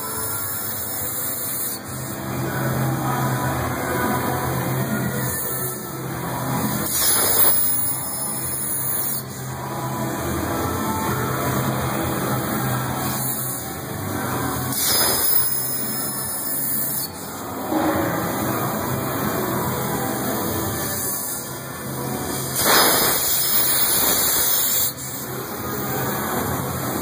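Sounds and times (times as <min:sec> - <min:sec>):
cutting torch hissing: 0:06.6 - 0:09.3, 0:14.6 - 0:17.4, 0:20.4 - 0:25.3.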